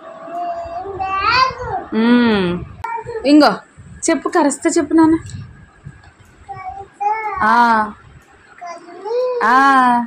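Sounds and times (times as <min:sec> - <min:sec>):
toddler sing-song voice: 0:00.3 - 0:01.9, 0:02.8 - 0:03.2, 0:06.4 - 0:07.5, 0:08.6 - 0:09.5.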